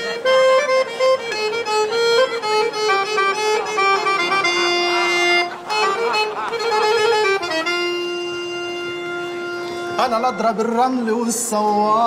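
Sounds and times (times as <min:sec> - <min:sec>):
accordion holding long note: 0:00.0 - 0:10.8
person singing: 0:10.0 - 0:12.0.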